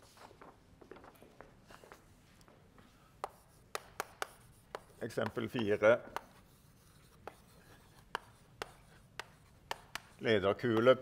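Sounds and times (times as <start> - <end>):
chalk tapping on board: 3.2 - 11.0
chalk writing on blackboard: 3.2 - 11.0.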